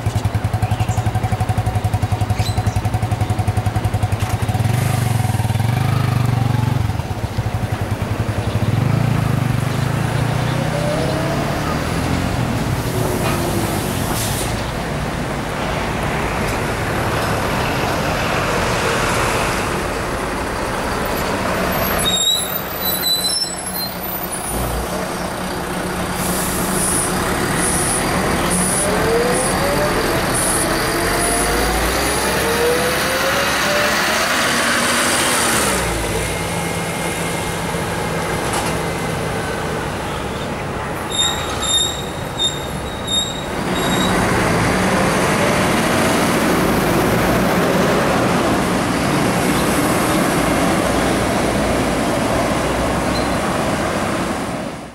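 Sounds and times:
bus diesel engine accelerating: 0:00.0 - 0:54.9
high squeaks: 0:21.9 - 0:24.0, 0:41.0 - 0:44.4.

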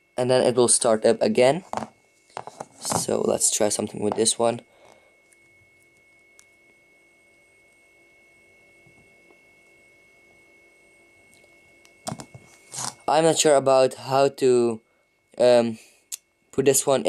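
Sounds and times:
faint high whine: 0:00.0 - 0:17.0.

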